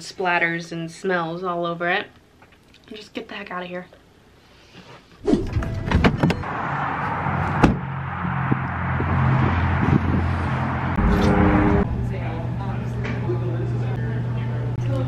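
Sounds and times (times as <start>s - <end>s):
car door opening and shutting: 5.2s - 6.5s, 7.6s - 7.8s
car engine running: 7.6s - 15.0s.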